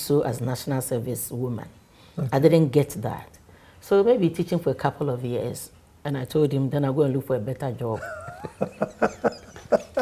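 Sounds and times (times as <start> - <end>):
person laughing: 8.0 - 10.0.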